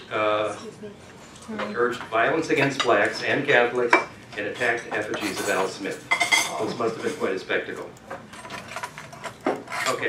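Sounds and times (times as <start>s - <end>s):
scratchy rubbing and rustling: 8.4s - 10.0s.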